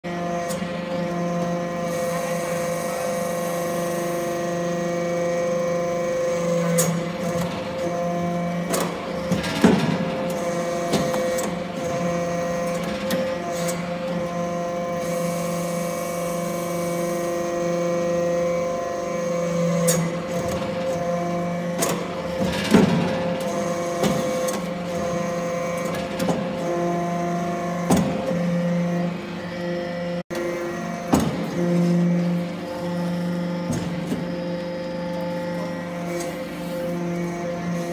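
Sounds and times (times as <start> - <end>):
hydraulic press humming: 0.1 - 37.9.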